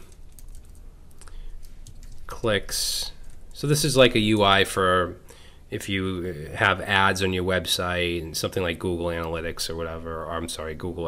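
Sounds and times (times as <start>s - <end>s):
computer keyboard typing: 0.0s - 4.5s.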